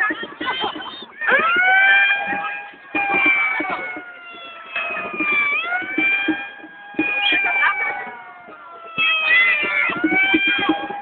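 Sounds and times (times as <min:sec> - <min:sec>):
crowd: 0:00.0 - 0:11.0.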